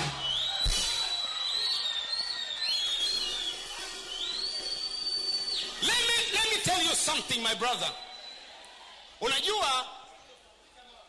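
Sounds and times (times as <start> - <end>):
shrill high whistles: 0.0 - 8.6.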